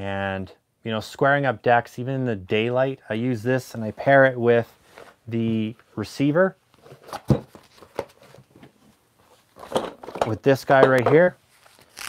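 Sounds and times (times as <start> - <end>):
rummaging of tools: 6.8 - 11.8
plastic toolbox latches clacking: 9.6 - 11.1.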